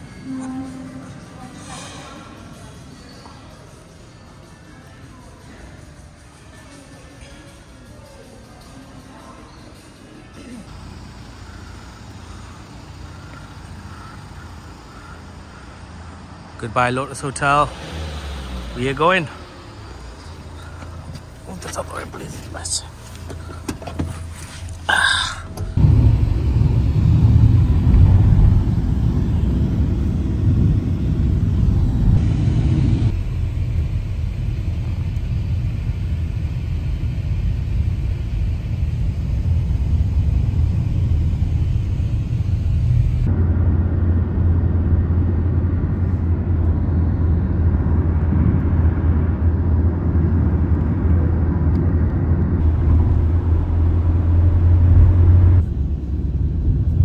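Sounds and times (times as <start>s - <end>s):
car cabin engine and road noise: 10.7s - 57.0s.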